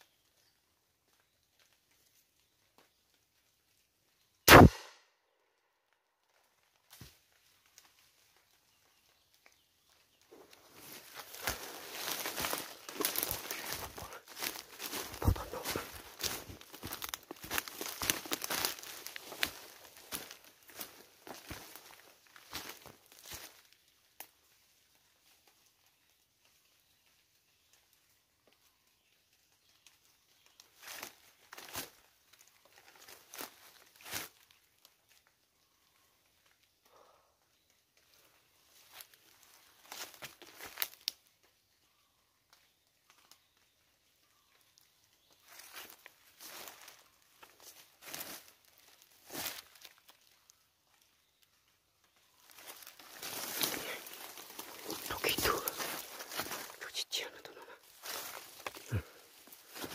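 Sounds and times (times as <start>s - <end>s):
gunshot: 4.5s - 5.0s
footsteps through dry leaves: 10.3s - 23.6s, 32.6s - 34.6s, 38.7s - 41.2s, 45.3s - 50.5s, 52.2s - 59.9s.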